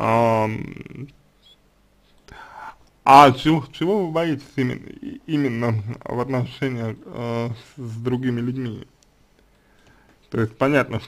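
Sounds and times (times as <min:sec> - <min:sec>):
man speaking: 0:00.0 - 0:01.2, 0:02.4 - 0:09.0, 0:10.3 - 0:11.0
breathy whisper-like sound: 0:01.4 - 0:02.9.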